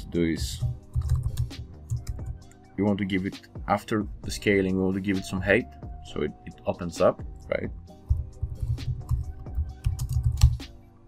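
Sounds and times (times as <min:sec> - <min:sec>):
background music: 0:00.0 - 0:11.0
computer keyboard typing: 0:00.6 - 0:02.3, 0:09.0 - 0:10.6.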